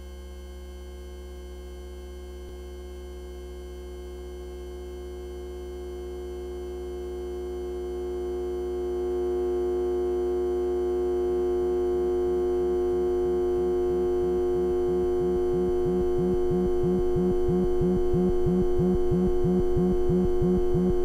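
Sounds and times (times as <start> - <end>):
synthesizer drone: 11.2 - 21.0
short low blips: 14.2 - 21.0.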